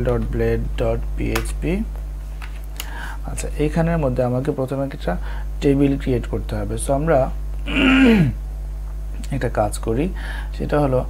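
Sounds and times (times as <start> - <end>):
low electrical hum: 0.0 - 11.0
person clearing throat: 7.6 - 8.4.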